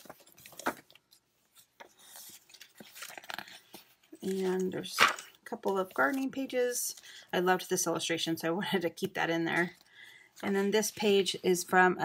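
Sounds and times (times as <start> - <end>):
paper pages rustling: 0.0 - 7.2.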